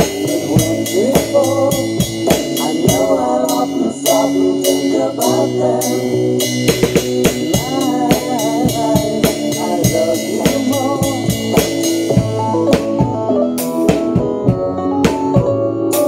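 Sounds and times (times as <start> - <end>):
acoustic drum kit: 0.0 - 16.0
recorded pop song: 0.0 - 16.0.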